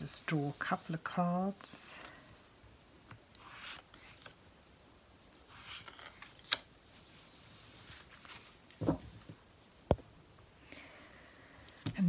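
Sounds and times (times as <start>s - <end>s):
cards sliding and rustling: 3.0s - 4.5s, 5.3s - 9.3s.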